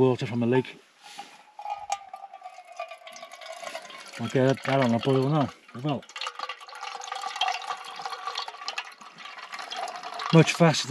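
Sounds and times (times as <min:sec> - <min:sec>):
water trickling into metal pot: 0:01.1 - 0:10.9.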